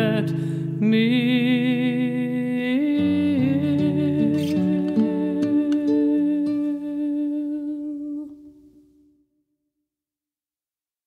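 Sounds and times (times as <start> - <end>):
plucked-string notes: 0.0 - 8.5.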